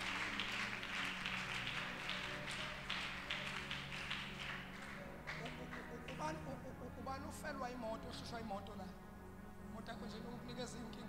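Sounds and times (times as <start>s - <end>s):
scattered claps and taps: 0.0s - 6.4s
faint murmur of congregation: 0.0s - 11.0s
soft background music: 0.0s - 11.0s.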